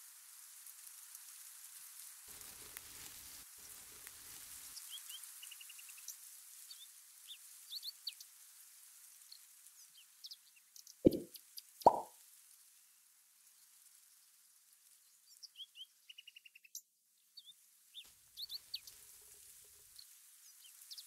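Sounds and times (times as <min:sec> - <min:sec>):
steady hiss: 0:00.0 - 0:15.4, 0:17.6 - 0:21.0
small birds chirping: 0:04.6 - 0:08.4, 0:09.2 - 0:12.1, 0:15.0 - 0:21.0.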